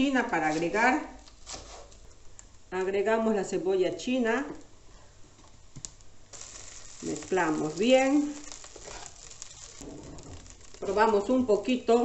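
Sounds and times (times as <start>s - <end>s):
frying hiss from wok: 5.9s - 11.7s.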